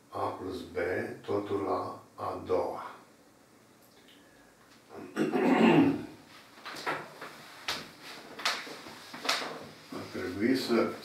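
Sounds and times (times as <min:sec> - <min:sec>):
person coughing: 0:05.0 - 0:06.1.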